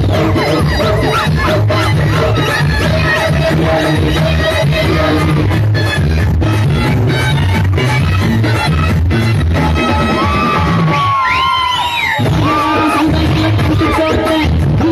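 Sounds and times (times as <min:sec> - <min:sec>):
duet singing: 0:00.0 - 0:10.8
heavy beat: 0:00.0 - 0:11.1, 0:12.2 - 0:14.9.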